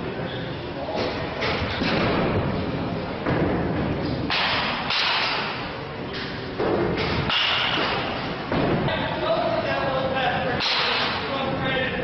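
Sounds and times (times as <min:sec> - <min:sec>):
baseballs hitting cage netting: 0:04.2 - 0:09.0.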